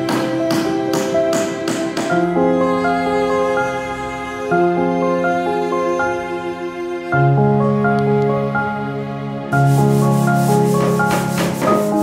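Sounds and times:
hammer striking nails into wood: 0:00.0 - 0:02.2
background music with held notes: 0:00.0 - 0:12.0.

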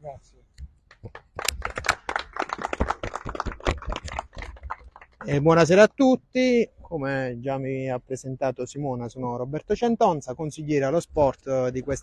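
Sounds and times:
people clapping: 0:00.9 - 0:05.5.

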